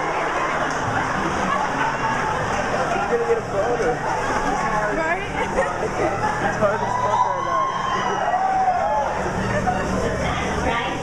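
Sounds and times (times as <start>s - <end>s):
crowd babble: 0.0s - 11.0s.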